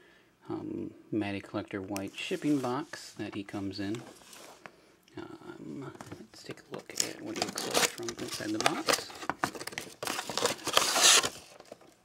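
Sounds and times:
cardboard scraping and rustling: 7.2s - 11.8s.

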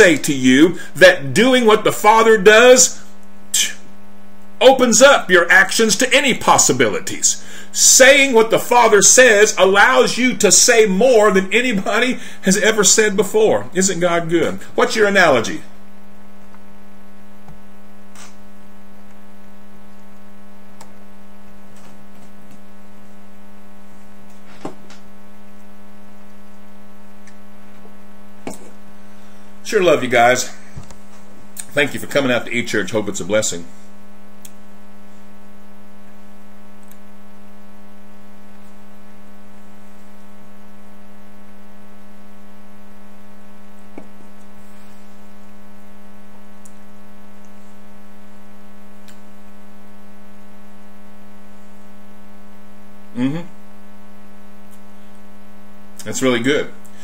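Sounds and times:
steady electrical hum: 0.0s - 57.0s.

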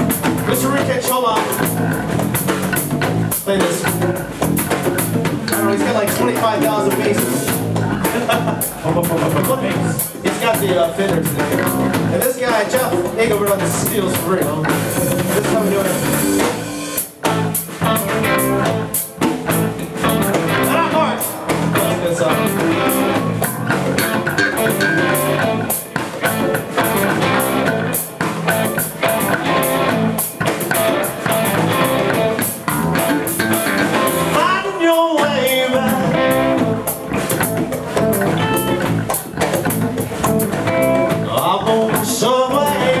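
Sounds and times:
live blues band: 0.0s - 43.0s
person singing: 5.5s - 16.3s, 20.5s - 23.3s, 33.9s - 36.9s, 41.1s - 43.0s.

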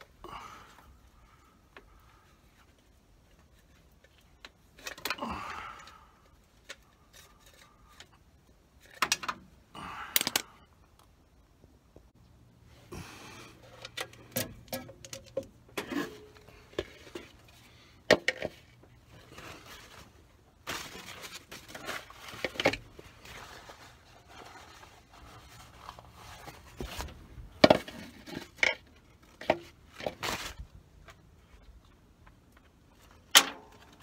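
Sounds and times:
hands handling engine parts: 12.2s - 34.0s.

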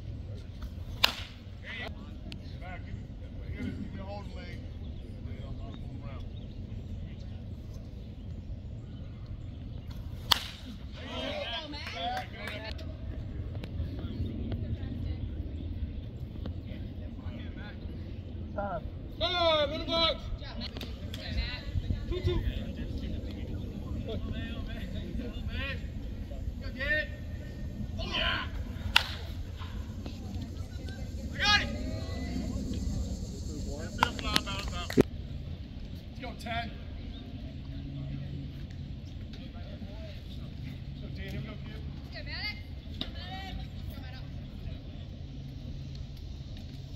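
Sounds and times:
faint indistinct voices: 0.0s - 46.8s
low open-air rumble: 0.0s - 46.9s
baseball popping into mitt: 10.3s - 10.7s
spectators shouting: 30.7s - 33.0s.

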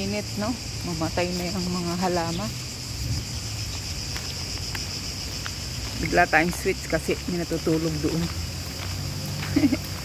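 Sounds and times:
insect chorus buzzing: 0.0s - 10.0s.

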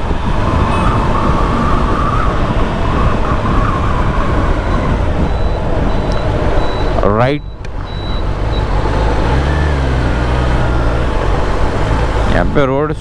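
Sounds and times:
wind on microphone: 0.0s - 7.0s
motorcycle engine and exhaust: 0.0s - 13.0s.

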